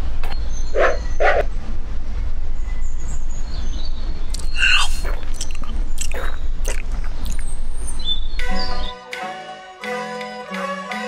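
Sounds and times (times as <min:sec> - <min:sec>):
steady low rumble: 0:00.0 - 0:08.9.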